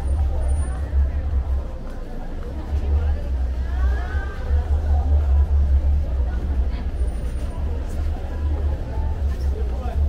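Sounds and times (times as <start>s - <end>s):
car traffic: 0.0s - 10.0s.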